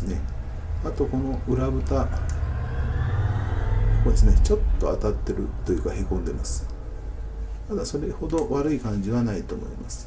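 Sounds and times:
faint whine: 0.0 - 10.0
low background rumble: 0.0 - 10.0.

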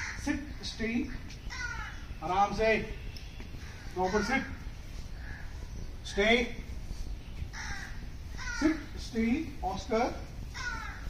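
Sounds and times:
crow cawing: 0.0 - 2.2, 3.5 - 5.9, 7.5 - 9.0, 10.5 - 11.0
man speaking a command: 0.2 - 1.2, 2.2 - 3.0, 3.9 - 4.6, 6.0 - 6.7, 8.6 - 10.3.

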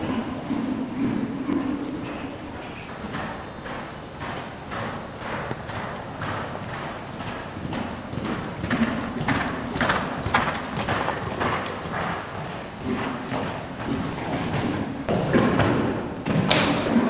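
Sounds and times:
horse hoofbeats on sand: 0.0 - 17.0.

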